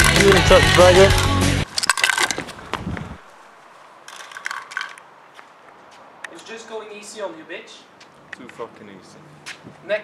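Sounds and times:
spinning tops clattering: 0.0s - 2.4s, 4.1s - 5.0s.

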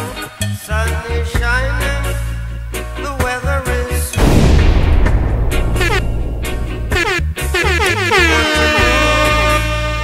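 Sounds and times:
reggae music mix: 0.2s - 8.2s.

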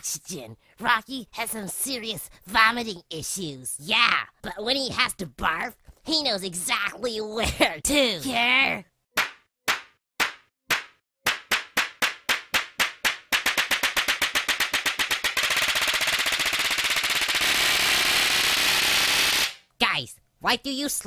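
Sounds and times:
cartoon slap sound effects: 9.2s - 15.4s.

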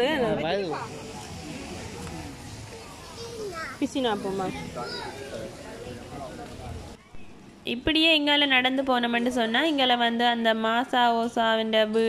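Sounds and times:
outdoor background noise: 0.0s - 12.0s.

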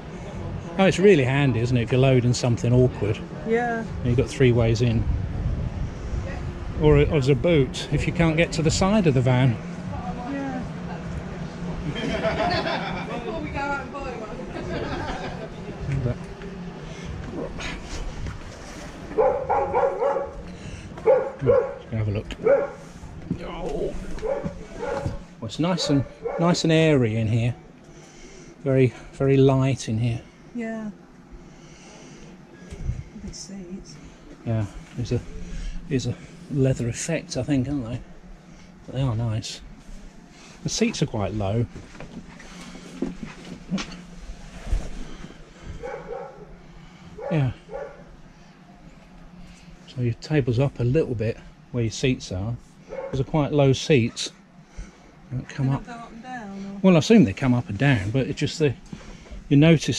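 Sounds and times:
dog barking: 19.2s - 20.4s, 21.0s - 22.8s, 24.2s - 25.2s, 25.8s - 26.6s, 45.8s - 46.5s, 47.2s - 48.1s, 52.9s - 53.2s.

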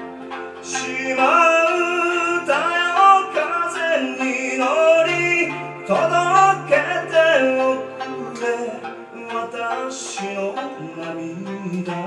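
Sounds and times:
keyboard: 0.0s - 12.0s
person singing: 0.0s - 12.0s
plucked strings: 0.0s - 12.0s.

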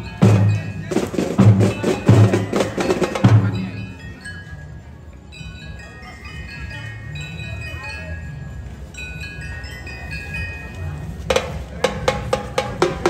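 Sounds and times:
bell lyres playing soft melody: 0.0s - 13.0s.

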